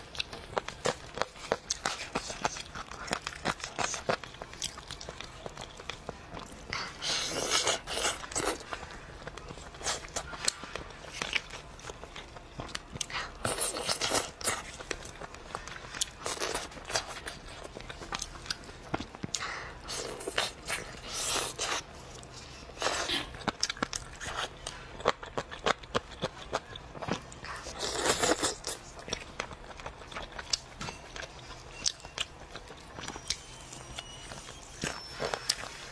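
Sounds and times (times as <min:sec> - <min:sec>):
chewing with wet smacks: 0:00.0 - 0:33.4.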